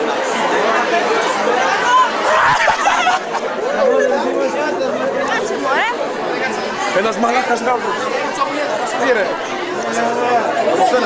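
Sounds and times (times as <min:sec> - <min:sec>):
young voices chattering: 0:00.0 - 0:11.0.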